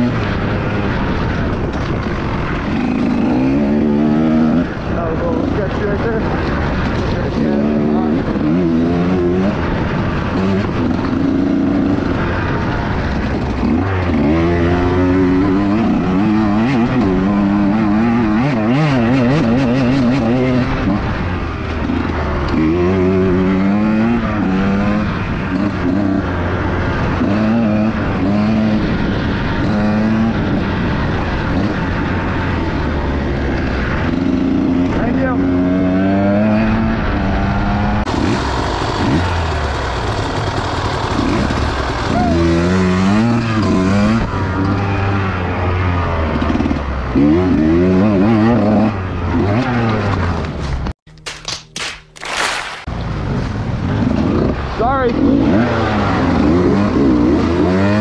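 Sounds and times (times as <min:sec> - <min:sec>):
dirt bike engine revving: 0:00.0 - 0:50.9, 0:52.2 - 0:58.0.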